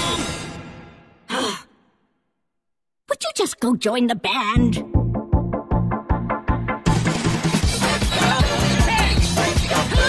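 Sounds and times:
music: 4.6 - 10.0.

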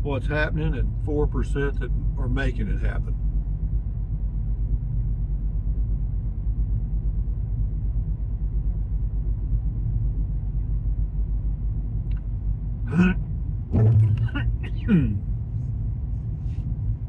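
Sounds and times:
car cabin road rumble: 0.0 - 17.0.

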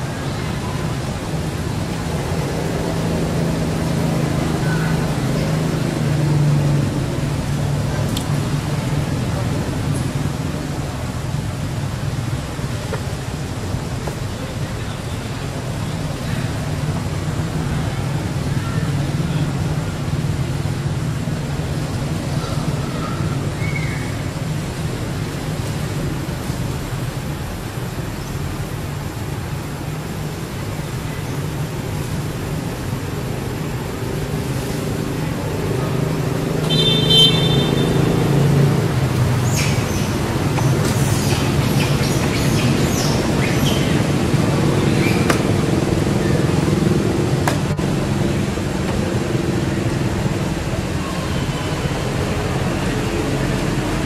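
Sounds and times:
traffic rumble: 0.0 - 54.0.

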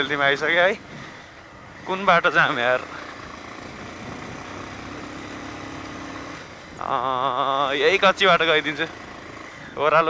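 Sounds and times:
dirt bike engine running: 0.0 - 9.8.

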